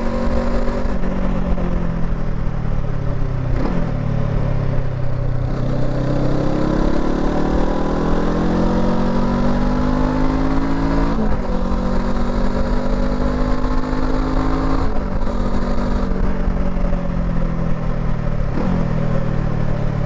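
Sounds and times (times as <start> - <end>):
motorcycle engine accelerating: 0.0 - 20.0.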